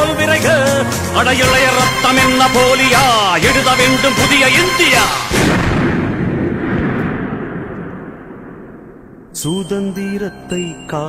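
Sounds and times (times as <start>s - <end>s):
deep rumbling boom: 5.2s - 9.4s.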